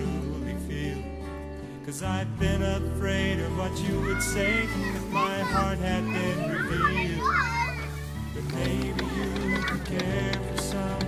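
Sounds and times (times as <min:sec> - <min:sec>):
song backing music: 0:00.0 - 0:11.0
children calling out: 0:03.8 - 0:10.2.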